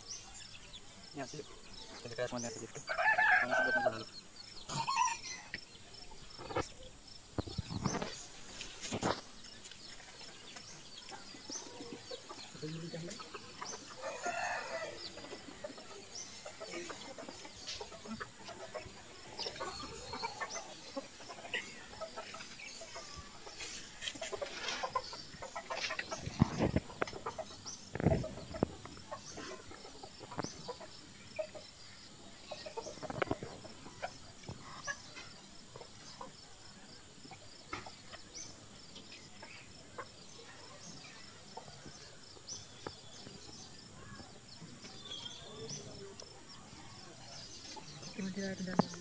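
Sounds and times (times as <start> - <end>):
chickens clucking: 0.0 - 49.0.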